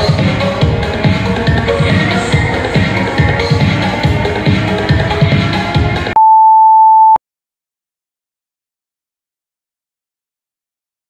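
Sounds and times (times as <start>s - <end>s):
workout music: 0.0s - 6.1s
electronic timer beep: 6.2s - 7.2s.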